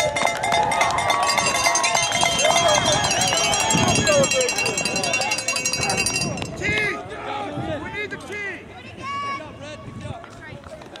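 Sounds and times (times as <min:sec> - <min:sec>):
people shouting and calling out: 0:00.0 - 0:10.6.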